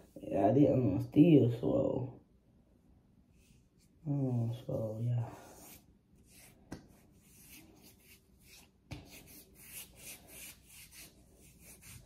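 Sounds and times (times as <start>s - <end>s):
soft skin rubbing swishes: 5.3s - 12.0s.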